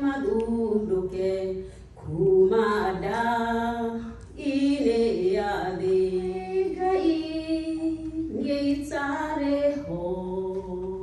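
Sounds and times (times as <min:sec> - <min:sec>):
woman singing gospel song: 0:00.0 - 0:11.0.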